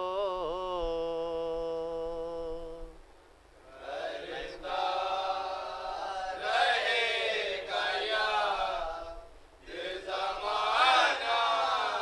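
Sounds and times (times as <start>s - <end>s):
men chanting a lament: 3.6s - 12.0s.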